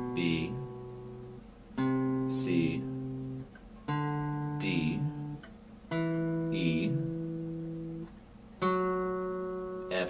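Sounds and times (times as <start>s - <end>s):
acoustic guitar notes ringing: 0.0s - 10.0s.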